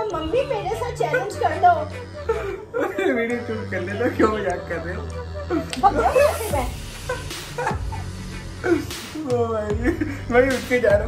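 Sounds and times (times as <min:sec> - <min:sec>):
background music: 0:00.0 - 0:11.0
young man laughing: 0:01.0 - 0:10.6.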